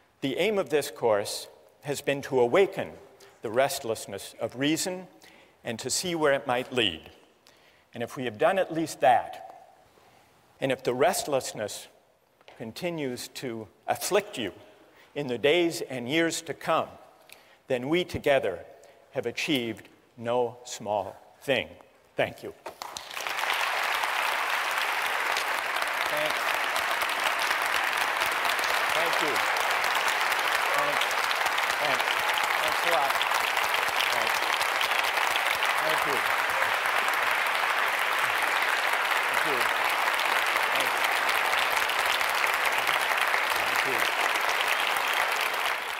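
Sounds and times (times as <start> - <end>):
audience applauding: 22.7 - 45.9.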